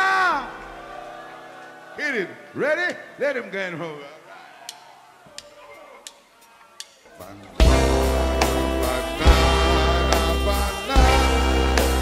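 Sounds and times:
drum stick clicks: 6.8 - 7.0.

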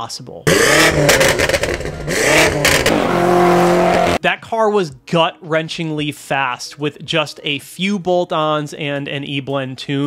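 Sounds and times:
car engine revving hard: 0.5 - 4.2.

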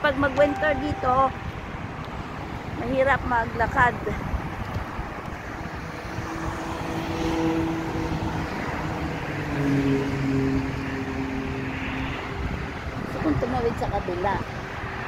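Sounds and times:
road noise rumble: 0.0 - 15.0.

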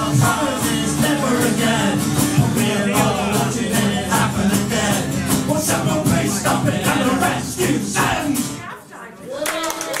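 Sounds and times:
audience clapping: 9.3 - 10.0.

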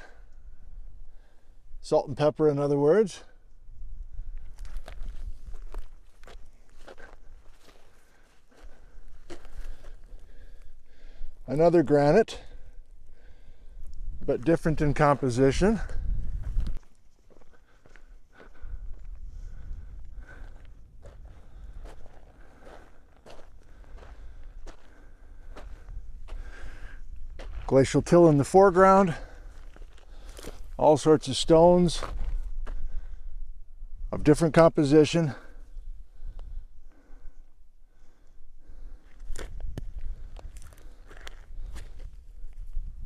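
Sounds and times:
footsteps through dry grass: 3.8 - 11.0, 14.0 - 33.2, 38.7 - 43.0.

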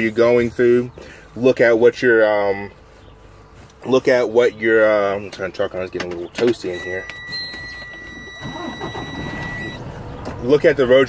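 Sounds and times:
engine idling: 6.2 - 11.0.

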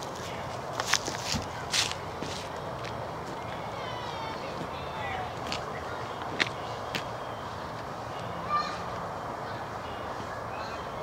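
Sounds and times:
footsteps: 0.0 - 9.1
outdoor background hiss: 0.0 - 11.0.

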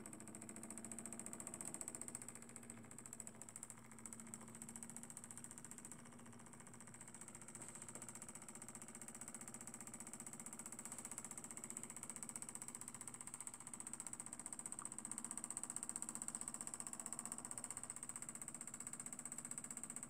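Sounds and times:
small engine ticking clatter: 0.0 - 20.0.

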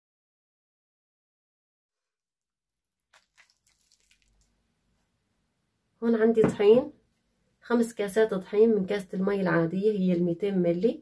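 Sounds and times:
wet squishes of hand squeezing dough: 3.1 - 5.1.

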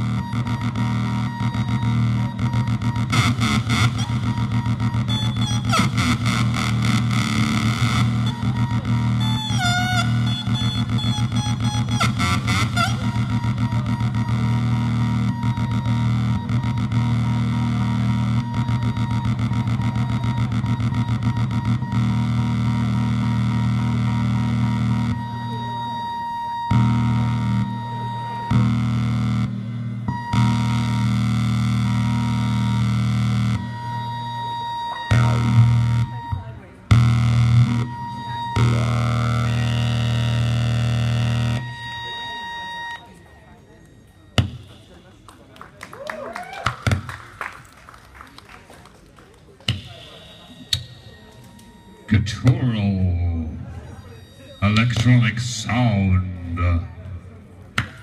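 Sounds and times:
fast buzzing pulse: 0.0 - 43.2
droning electronic synth noise: 0.0 - 45.3, 49.9 - 57.9
thin high tone: 49.9 - 55.8.

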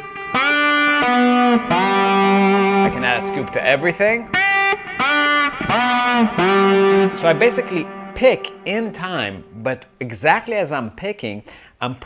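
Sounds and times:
electric guitar scooped notes: 0.0 - 9.9.

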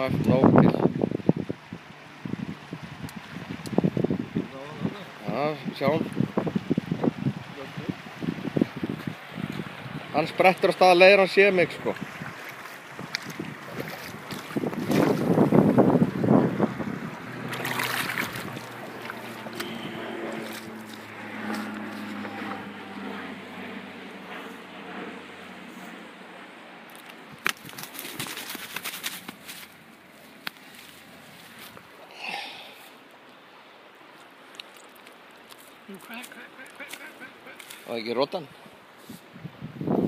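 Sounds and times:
wind buffeting microphone: 0.0 - 10.5, 11.6 - 25.4, 38.6 - 40.0
river water rushing: 1.0 - 24.0, 26.2 - 39.0.

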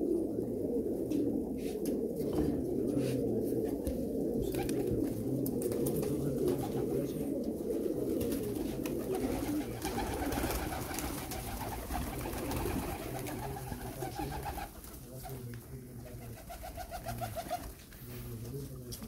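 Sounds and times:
pigeons cooing: 0.0 - 19.0
wings flapping: 3.0 - 19.0.

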